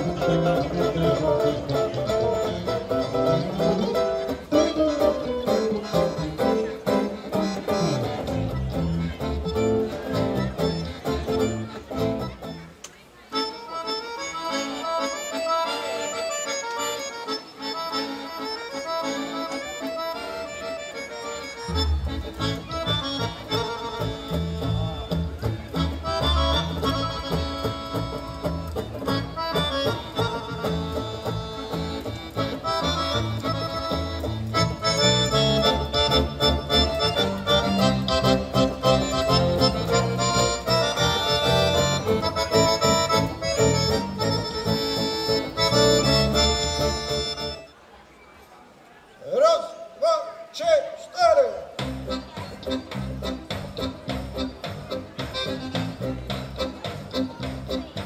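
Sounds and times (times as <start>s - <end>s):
electric bass guitar: 0.0s - 12.8s, 20.4s - 47.6s, 51.8s - 58.0s
acoustic guitar: 0.0s - 47.7s
piano accordion melody: 0.0s - 47.7s, 51.9s - 58.0s.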